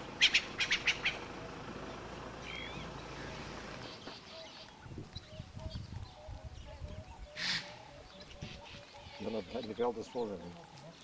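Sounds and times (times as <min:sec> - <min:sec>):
bird chirping: 0:00.0 - 0:11.0.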